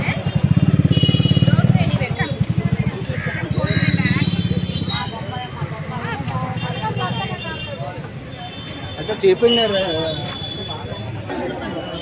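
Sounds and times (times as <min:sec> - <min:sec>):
crowd talking: 0:00.0 - 0:12.0.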